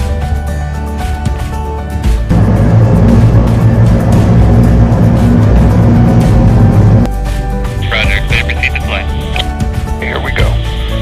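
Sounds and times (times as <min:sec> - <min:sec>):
music: 0:00.0 - 0:11.0
rotors whirring drone: 0:02.3 - 0:07.1.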